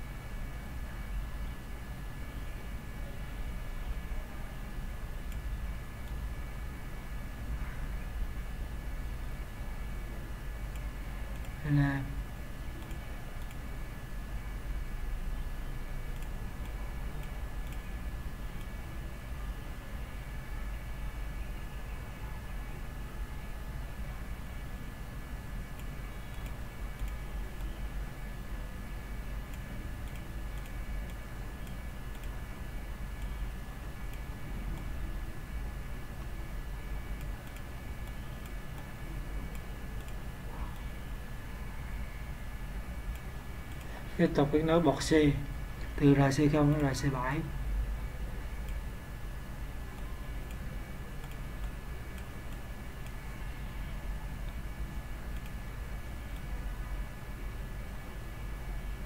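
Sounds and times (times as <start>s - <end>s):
low electrical hum and hiss: 0.0s - 59.0s
computer mouse clicking: 10.7s - 11.6s, 12.8s - 13.7s, 16.1s - 17.9s, 25.7s - 27.8s, 29.5s - 32.4s, 34.0s - 35.0s, 37.1s - 41.0s, 43.1s - 44.1s, 50.0s - 53.3s, 54.4s - 56.5s.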